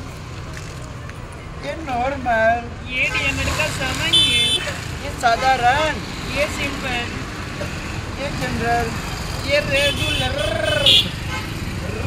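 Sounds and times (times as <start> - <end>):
street traffic rumble: 0.0 - 12.0
voices and chatter: 0.0 - 12.0.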